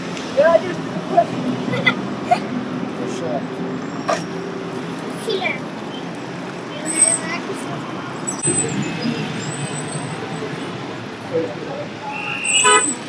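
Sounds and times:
busy street traffic: 0.0s - 13.0s
vehicle horn: 12.1s - 13.0s.

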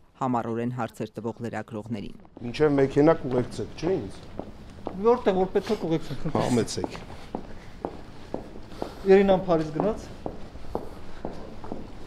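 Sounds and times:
footsteps on hard floor: 2.2s - 12.0s.

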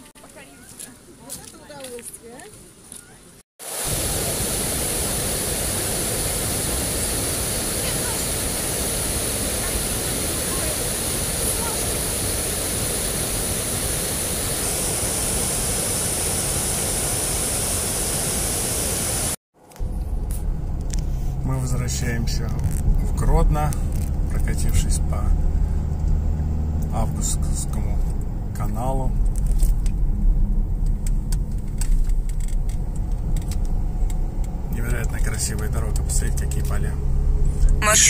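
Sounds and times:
water rushing over weir: 3.6s - 19.4s.

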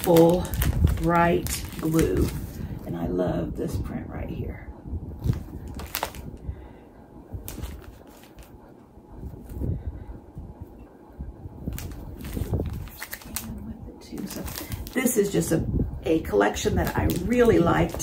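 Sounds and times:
fabric rustling and rubbing: 7.4s - 9.8s, 11.6s - 13.5s.

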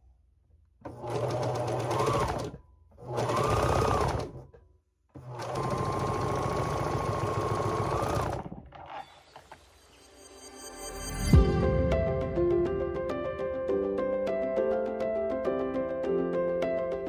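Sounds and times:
overlock machine stitching: 0.8s - 9.3s.

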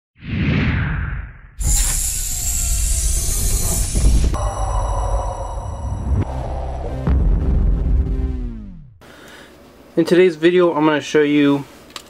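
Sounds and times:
whoosh: 0.2s - 7.2s
deep rumble: 0.7s - 9.0s
loud hissing noise: 1.6s - 5.9s.

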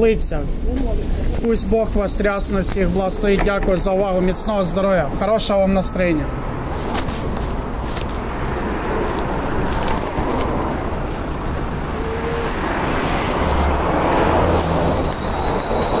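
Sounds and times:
low rumble of passing vehicles: 0.0s - 16.0s.

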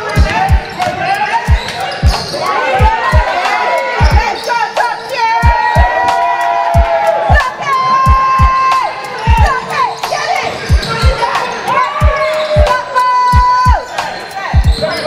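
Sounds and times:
sneakers squeaking: 0.0s - 5.6s, 8.1s - 15.0s.

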